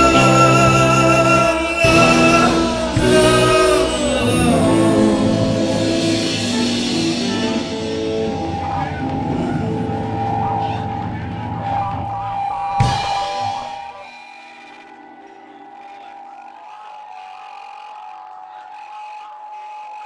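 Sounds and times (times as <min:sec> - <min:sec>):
live rock band playing: 0:00.0 - 0:10.6
held ringing tone: 0:00.0 - 0:20.0.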